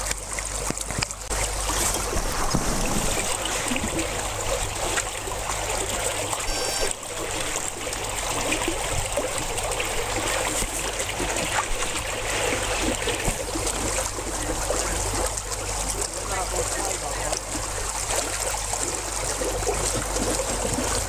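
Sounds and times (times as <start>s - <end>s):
water sloshing and trickling: 0.0s - 21.0s.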